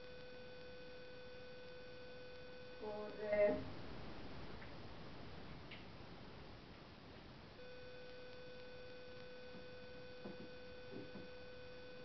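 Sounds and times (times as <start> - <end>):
electrical hum: 0.0 - 12.0
faint room tone hiss: 0.0 - 12.0
faint ticks: 8.0 - 9.7.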